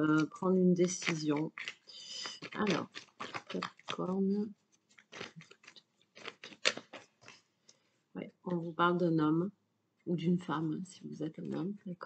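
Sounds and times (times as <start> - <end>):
cards being shuffled by hand: 0.0 - 7.5.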